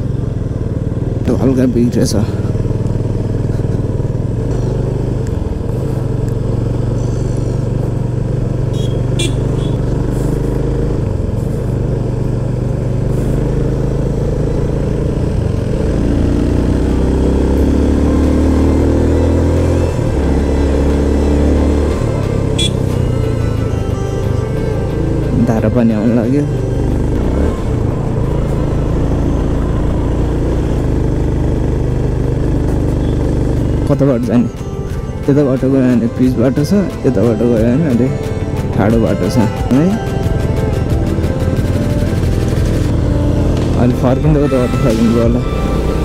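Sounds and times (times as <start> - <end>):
motorcycle engine running: 0.0 - 46.0.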